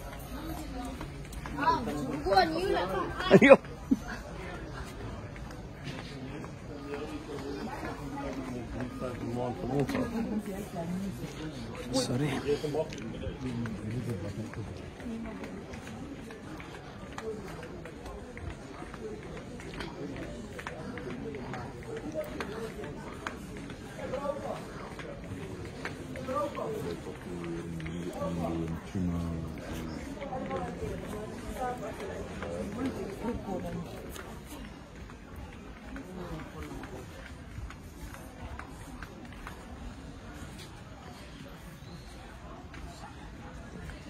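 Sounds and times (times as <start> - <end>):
background chatter of shoppers: 0.0 - 44.0
people talking: 0.0 - 44.0.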